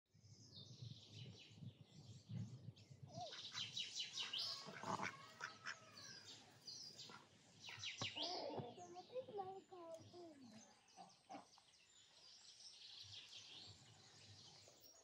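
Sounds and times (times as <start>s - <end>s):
small birds chirping and trilling: 0.2s - 15.0s.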